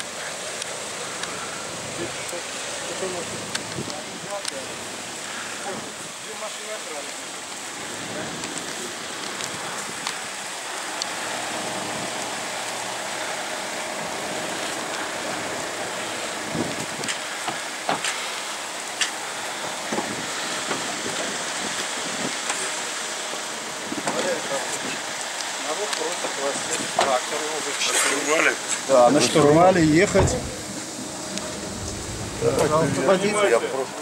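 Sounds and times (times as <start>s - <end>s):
steady outdoor hiss: 0.0s - 34.0s
people talking close by: 0.2s - 9.9s, 24.0s - 34.0s.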